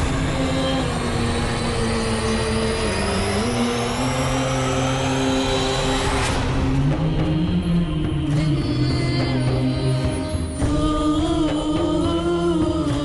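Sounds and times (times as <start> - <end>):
high rising tone: 0.0 - 10.1
loud steady rumble: 0.0 - 13.0
low drone notes: 0.0 - 13.0.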